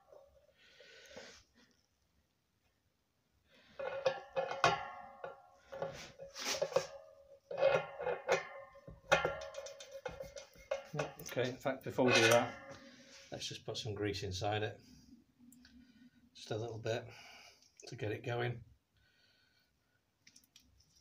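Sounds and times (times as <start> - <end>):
metal clinks and taps: 3.8 - 11.5.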